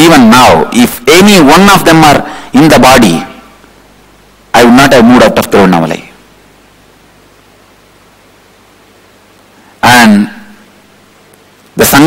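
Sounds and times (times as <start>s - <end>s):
man talking: 0.0s - 3.4s, 4.5s - 6.2s, 9.8s - 10.6s, 11.8s - 12.0s
faint room tone hiss: 0.0s - 12.0s.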